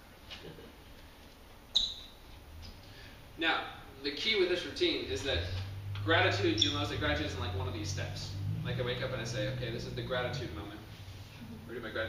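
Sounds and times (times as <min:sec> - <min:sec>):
short high-pitched squeak: 0:01.7 - 0:02.2.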